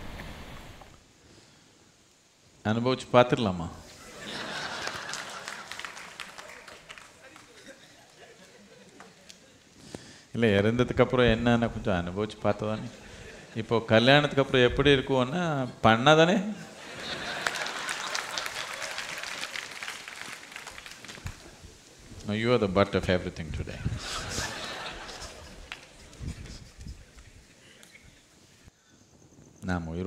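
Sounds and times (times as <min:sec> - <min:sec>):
audience clapping: 0:04.3 - 0:09.5, 0:16.9 - 0:21.6, 0:24.4 - 0:26.4.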